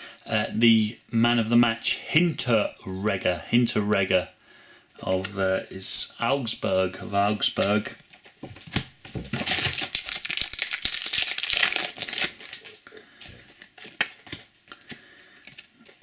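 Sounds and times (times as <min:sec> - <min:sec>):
foil pack crinkling and tearing: 0:09.3 - 0:15.7.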